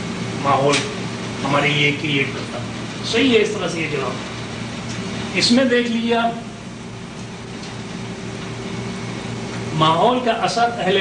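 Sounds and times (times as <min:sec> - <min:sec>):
low even hum: 0:00.0 - 0:11.0.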